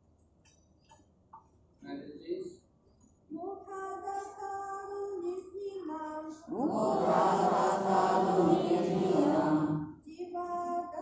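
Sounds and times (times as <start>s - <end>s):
lone voice chanting: 6.5s - 9.8s
group of voices chanting: 6.5s - 9.9s.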